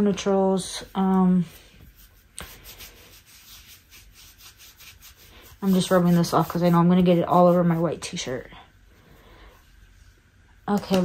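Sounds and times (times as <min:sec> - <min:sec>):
wipe scrubbing skin: 0:00.8 - 0:08.3.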